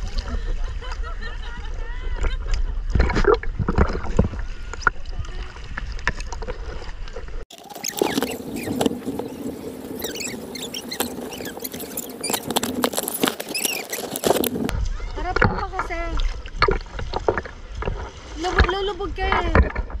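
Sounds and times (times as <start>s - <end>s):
seawater sloshing and bubbling: 0.0s - 20.0s
squeaky bubbling chirps: 7.5s - 14.4s
low rumbling wash: 8.1s - 13.6s.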